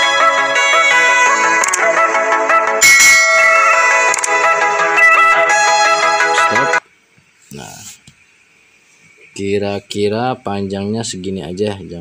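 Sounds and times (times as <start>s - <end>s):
electronic intro music: 0.0s - 6.8s.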